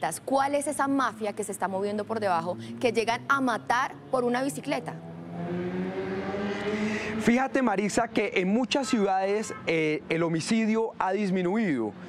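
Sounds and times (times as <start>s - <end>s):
road noise: 0.0s - 12.0s.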